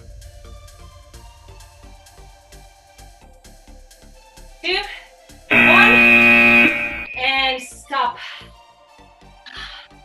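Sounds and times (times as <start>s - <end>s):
electronic buzzer tone: 5.5s - 7.4s.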